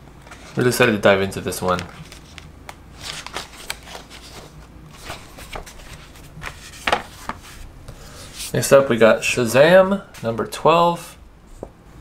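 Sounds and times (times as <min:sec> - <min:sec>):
paper rustling and page flicks: 0:01.6 - 0:07.6.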